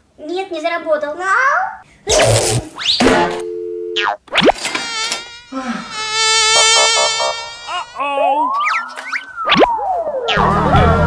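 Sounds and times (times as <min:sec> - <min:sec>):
high wobbling buzz: 0:04.0 - 0:11.0.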